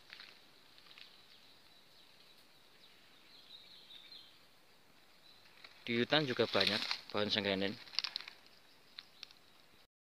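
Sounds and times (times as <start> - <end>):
faint high-pitched chirping: 0.8 - 9.9.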